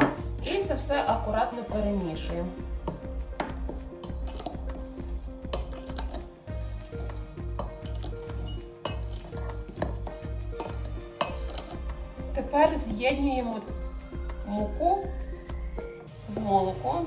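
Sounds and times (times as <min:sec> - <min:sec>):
background music with beat: 0:00.0 - 0:17.0
metal spoon clinking in bowl: 0:03.7 - 0:04.7, 0:05.5 - 0:06.3, 0:07.0 - 0:11.8.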